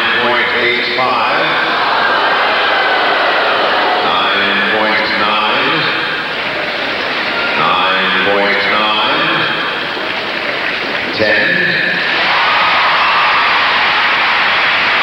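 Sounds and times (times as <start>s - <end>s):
announcer over public address: 0.0s - 1.6s, 4.0s - 6.0s, 7.5s - 9.6s, 11.1s - 12.0s
crowd noise: 0.0s - 15.0s.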